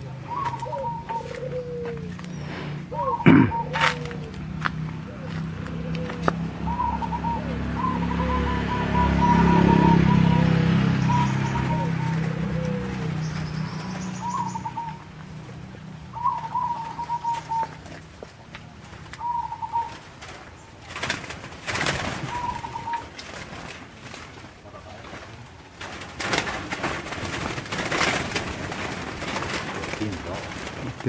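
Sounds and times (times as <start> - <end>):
doves cooing: 0.0 - 31.0.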